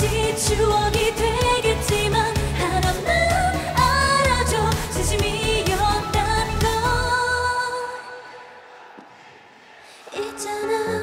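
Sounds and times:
dance-pop backing track: 0.0s - 8.1s
female vocals: 0.0s - 8.4s, 10.1s - 11.0s.

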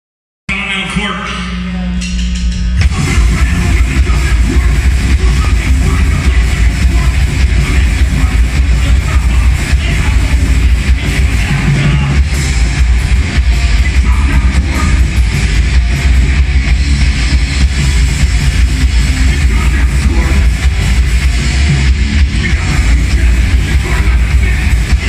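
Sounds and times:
distorted electric guitar: 0.5s - 25.0s
electric bass: 0.5s - 25.0s
drum kit: 1.3s - 25.0s.

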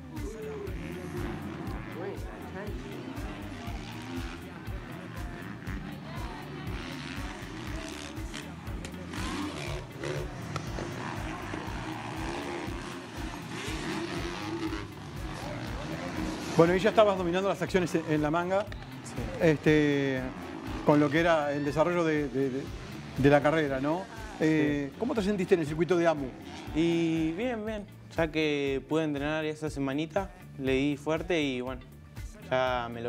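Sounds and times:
motorcycle engines revving: 0.0s - 29.2s
background music with steady beat: 0.0s - 33.0s.

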